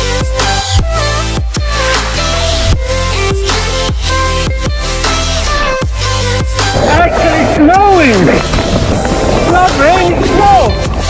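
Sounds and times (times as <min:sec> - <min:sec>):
wind noise: 0:06.6 - 0:11.0
man yelling: 0:09.5 - 0:10.8.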